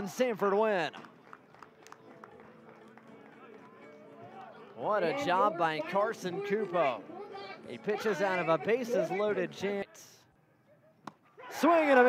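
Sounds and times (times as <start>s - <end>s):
distant shouting and cheering: 3.3s - 12.0s.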